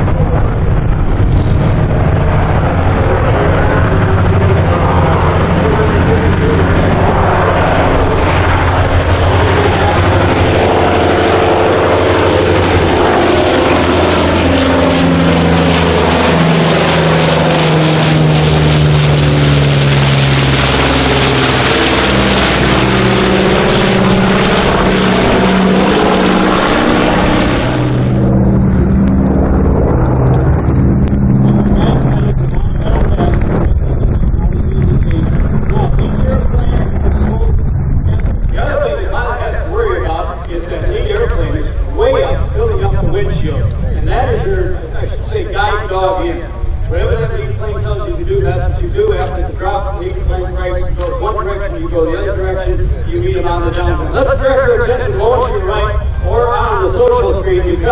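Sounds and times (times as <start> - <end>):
propeller plane droning overhead: 0.0 - 57.9.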